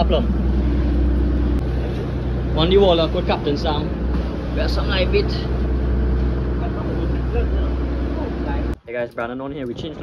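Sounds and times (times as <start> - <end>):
boat engine droning: 0.0 - 8.8.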